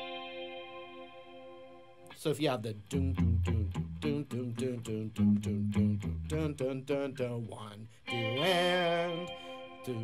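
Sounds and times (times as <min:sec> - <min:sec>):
clean electric guitar notes ringing: 0:00.0 - 0:06.6, 0:08.1 - 0:10.0.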